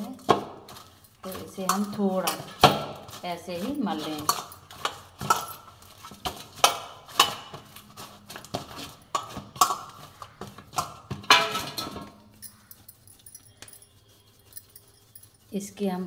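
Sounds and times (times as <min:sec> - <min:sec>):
dough kneaded in metal bowl: 0:00.0 - 0:16.0
bangles clinking: 0:03.7 - 0:07.1, 0:09.6 - 0:16.0.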